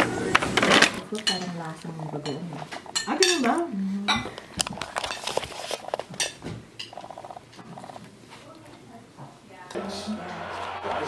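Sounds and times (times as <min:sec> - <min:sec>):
cutlery and dishes clinking: 0:00.4 - 0:07.9
paper wrapper rustling: 0:04.6 - 0:06.3.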